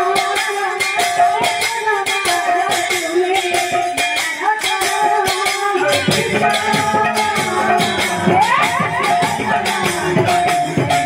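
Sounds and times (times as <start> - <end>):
fast drum and jingling percussion: 0.0 - 11.0
wavering held melody: 0.0 - 11.0.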